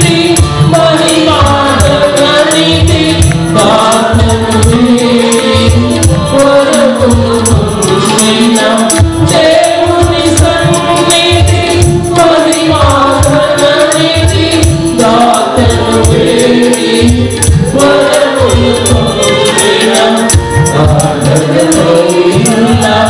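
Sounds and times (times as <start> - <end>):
low pulsing beat: 0.0 - 8.1
choir singing worship song: 0.0 - 23.0
tambourine shaken: 0.0 - 23.0.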